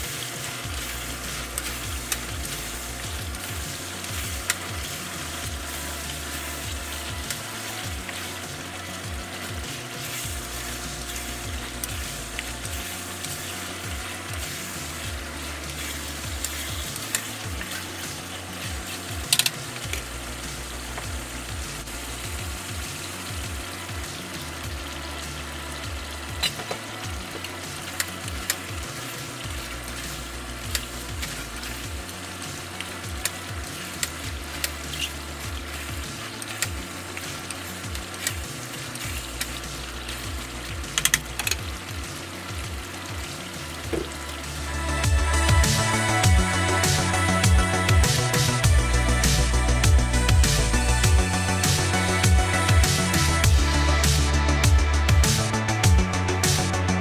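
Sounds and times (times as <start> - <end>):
chicken sizzling in a wok: 0.0 - 56.6.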